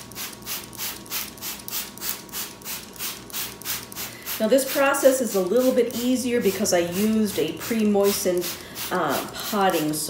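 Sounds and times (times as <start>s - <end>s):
spray bottle hissing sprays: 0.0s - 10.0s.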